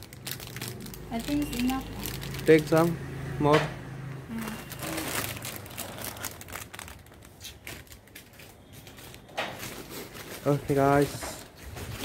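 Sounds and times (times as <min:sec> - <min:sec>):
plastic packaging crinkling: 0:00.0 - 0:02.9, 0:04.3 - 0:12.0.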